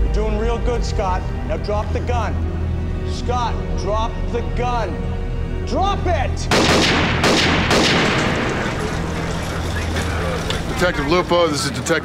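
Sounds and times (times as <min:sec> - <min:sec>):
handgun shots: 0:06.5 - 0:08.7.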